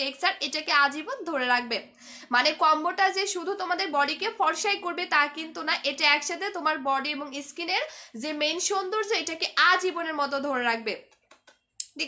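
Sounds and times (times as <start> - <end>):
woman speaking: 0.0 - 11.1, 11.8 - 12.0.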